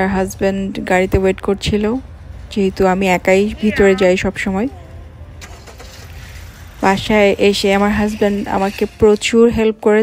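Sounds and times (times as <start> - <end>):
woman talking: 0.0 - 5.1, 6.8 - 10.0
low rumble of car: 0.0 - 10.0.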